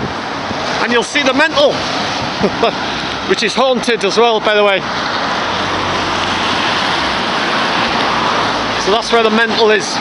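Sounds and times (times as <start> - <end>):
tyres hissing on wet road: 0.0 - 10.0.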